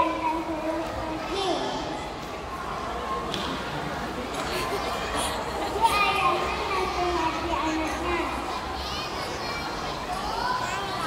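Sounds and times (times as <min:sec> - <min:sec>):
children speaking and calling out: 0:00.0 - 0:02.2, 0:04.6 - 0:11.0.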